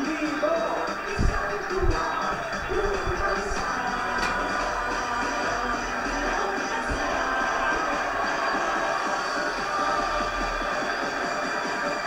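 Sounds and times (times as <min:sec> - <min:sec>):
tv theme music from speaker: 0:00.0 - 0:12.0.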